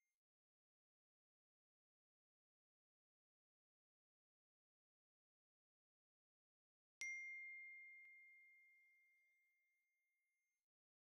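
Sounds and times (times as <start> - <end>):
bell-like ding: 7.0 - 9.0.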